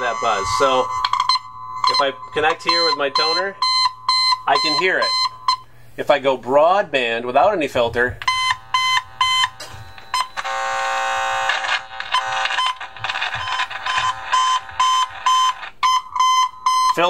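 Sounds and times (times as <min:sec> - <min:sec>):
tone probe beeps: 0:00.0 - 0:05.7, 0:08.2 - 0:17.0
electrical buzz: 0:00.0 - 0:05.8, 0:08.2 - 0:15.8.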